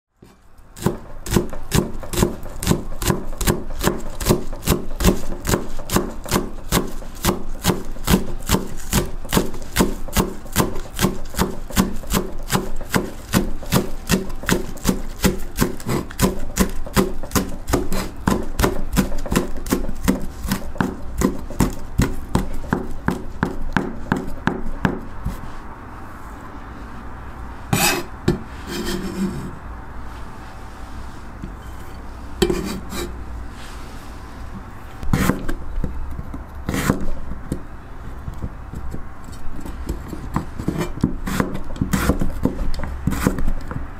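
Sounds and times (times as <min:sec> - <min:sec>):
knife chopping on wooden board: 0:00.2 - 0:25.4, 0:35.1 - 0:35.6, 0:36.7 - 0:37.6, 0:39.9 - 0:43.8.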